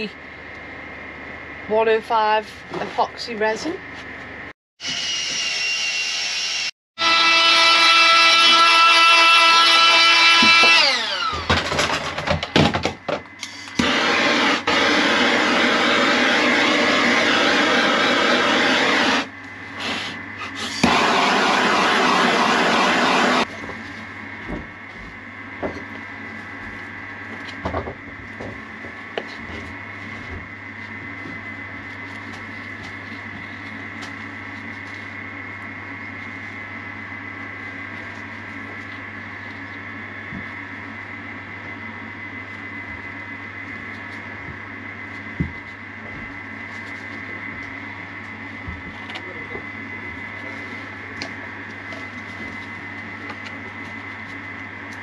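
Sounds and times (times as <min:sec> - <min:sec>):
gas blowtorch hissing: 0:13.4 - 0:23.5.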